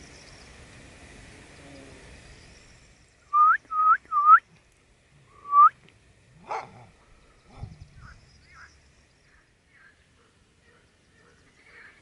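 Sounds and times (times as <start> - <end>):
short rising whistles: 3.3 - 4.5, 5.3 - 5.8.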